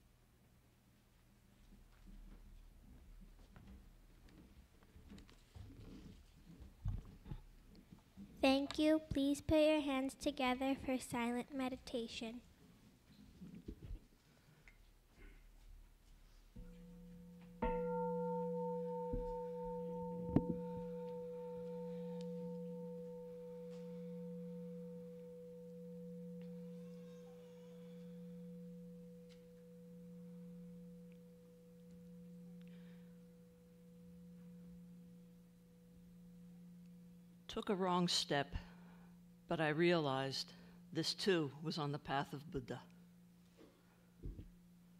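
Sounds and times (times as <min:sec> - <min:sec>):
bowl bell ringing: 0:16.6 - 0:41.7, 0:42.9 - 0:44.9.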